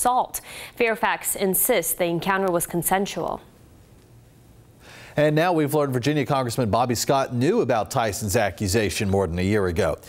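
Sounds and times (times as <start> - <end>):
faint background noise: 0.0 - 10.0
soft intake of breath: 0.4 - 0.8, 4.8 - 5.2.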